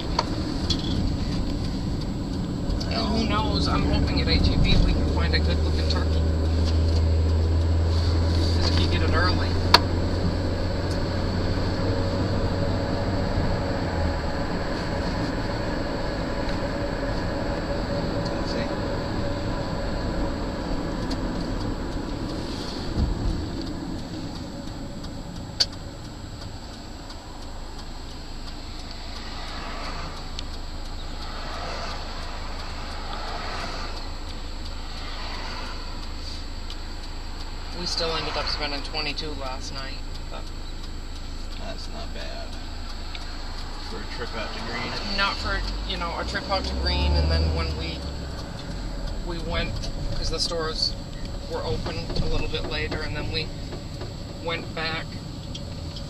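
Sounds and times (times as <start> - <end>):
car road and engine noise: 0.0 - 56.0
sharp clicks: 14.4 - 56.0.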